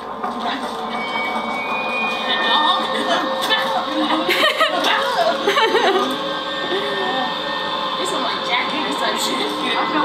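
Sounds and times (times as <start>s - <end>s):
quiet scattered talking: 0.2s - 10.0s.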